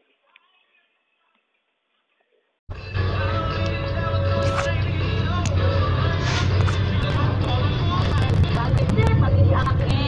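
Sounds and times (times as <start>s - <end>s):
people talking: 8.0s - 10.0s.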